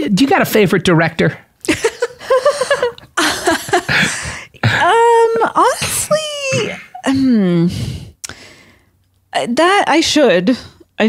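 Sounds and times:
woman's wordless vocal sounds: 3.9s - 7.9s.

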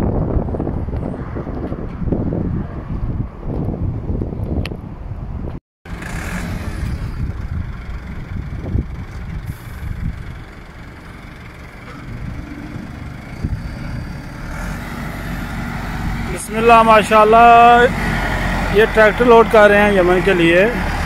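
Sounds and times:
tractor diesel engine running: 5.9s - 21.0s.

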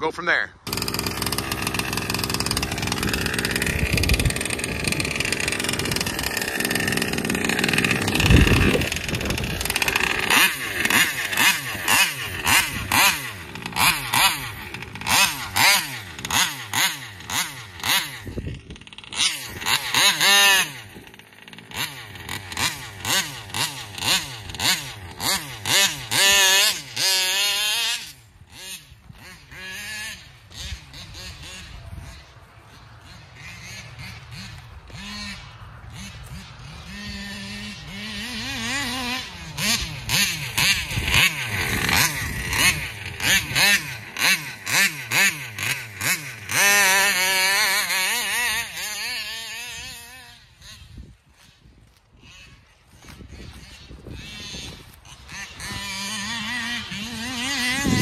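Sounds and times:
rc car engine revving: 0.4s - 58.0s.

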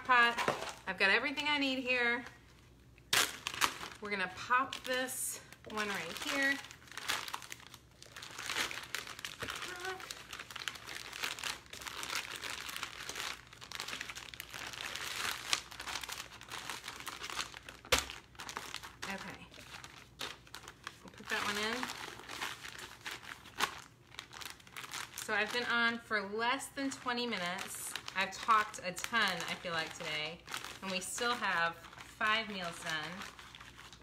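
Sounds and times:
plastic crinkling: 1.6s - 26.2s, 26.8s - 34.0s.

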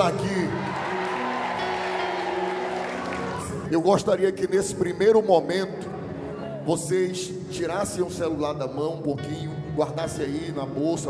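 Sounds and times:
soft music of held chords: 0.0s - 11.0s.

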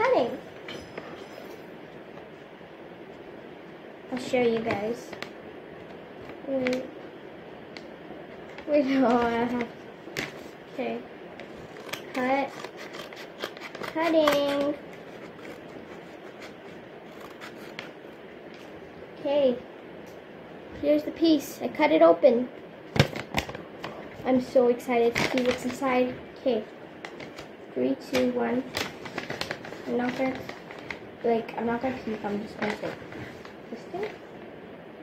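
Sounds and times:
low background hiss: 0.0s - 35.0s
scissors snipping paper: 11.7s - 15.7s, 16.3s - 17.9s.

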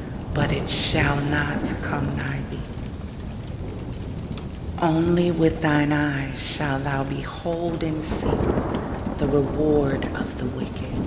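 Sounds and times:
low rumble of thunder: 0.0s - 11.0s
steady rain: 0.0s - 11.0s.

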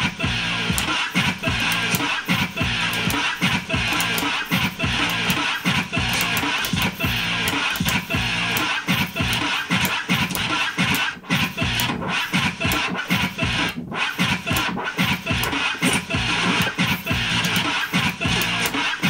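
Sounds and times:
steady hip-hop beat: 0.0s - 19.0s
turntable scratching on vinyl: 0.0s - 19.0s.

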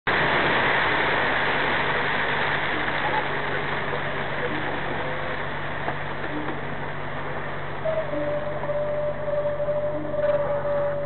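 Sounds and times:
tyres hissing on wet road: 0.1s - 11.0s
truck diesel engine droning: 0.6s - 11.0s.

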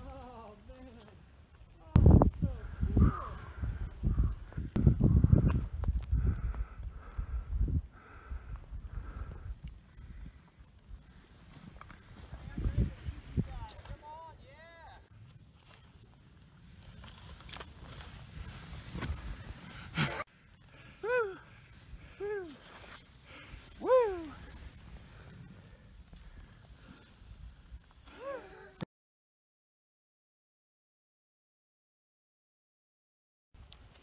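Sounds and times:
gusty wind rumble on microphone: 1.9s - 11.1s, 12.1s - 13.9s
skis sliding through powder snow: 10.9s - 14.4s, 15.4s - 20.2s, 21.5s - 28.0s.

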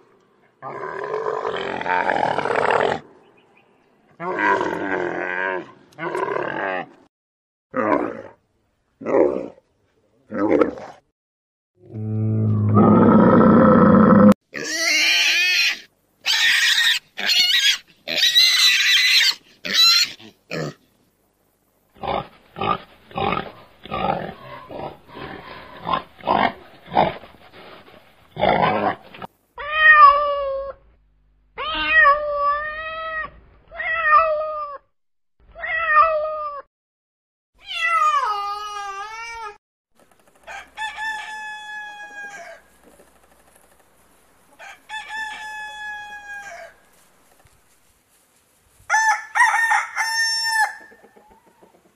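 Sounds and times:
high-pitched animal cries: 12.8s - 20.7s, 29.6s - 30.9s, 31.6s - 34.9s, 35.5s - 36.7s, 37.6s - 39.6s.

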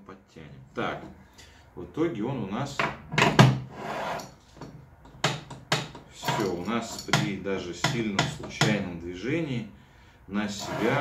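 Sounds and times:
tools knocking on metal table: 2.8s - 3.6s, 4.6s - 8.8s.

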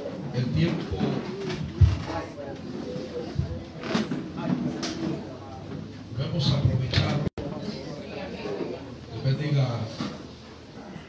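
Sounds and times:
man speaking over loudspeaker: 6.1s - 7.3s.

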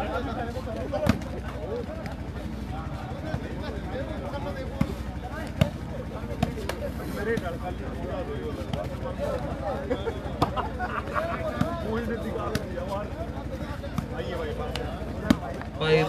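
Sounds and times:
murmur of crowd voices: 0.0s - 16.0s
volleyball slaps: 0.9s - 2.2s, 4.4s - 7.6s, 8.6s - 9.0s, 11.5s - 12.8s, 13.9s - 15.7s.

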